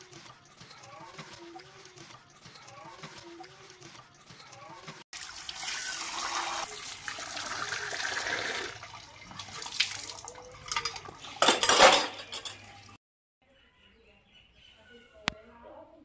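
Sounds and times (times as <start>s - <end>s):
tap water running onto dishes: 0.0s - 13.0s
dishes clinking: 10.1s - 13.0s.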